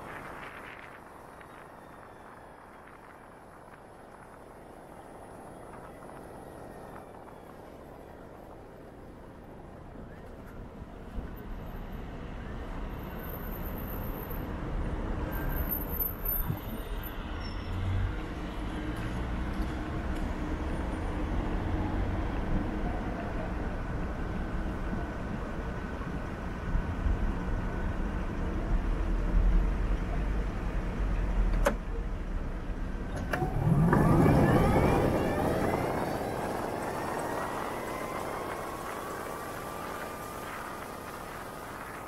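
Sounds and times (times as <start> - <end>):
engines rumbling: 0.0 - 42.0
vehicle passing: 33.3 - 42.0.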